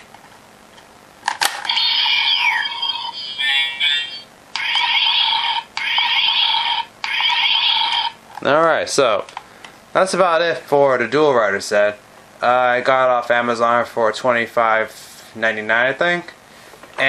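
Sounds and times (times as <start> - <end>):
toy beeping tones: 1.6 - 8.2
warbling electronic sound: 1.6 - 8.2.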